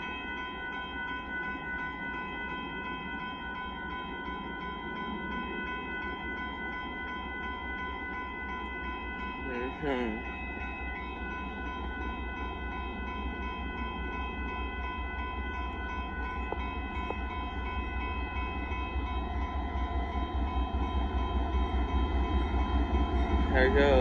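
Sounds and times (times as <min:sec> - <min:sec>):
crossing warning bell: 0:00.0 - 0:24.0
freight train rumbling: 0:01.3 - 0:24.0.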